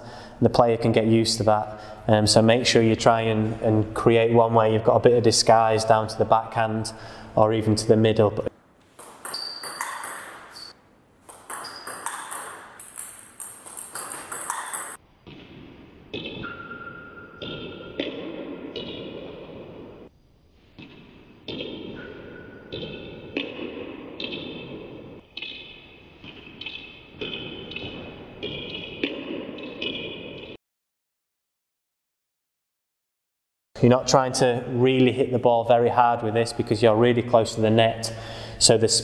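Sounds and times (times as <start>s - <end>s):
table tennis ball hits: 8.8s - 19.8s, 20.8s - 30.5s.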